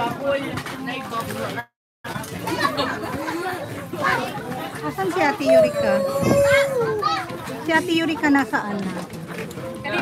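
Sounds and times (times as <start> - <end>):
children chattering: 2.4 - 9.0.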